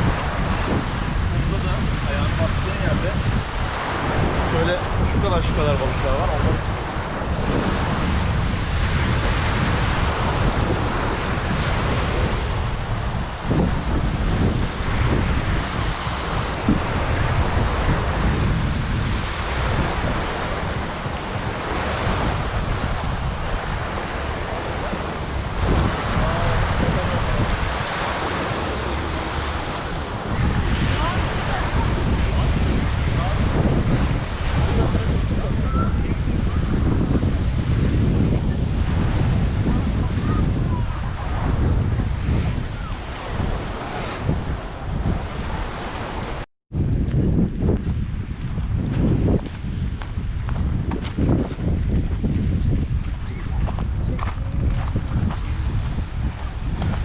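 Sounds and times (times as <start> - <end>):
small waves on sandy shore: 0.0 - 57.0
wind buffeting microphone: 0.0 - 57.0.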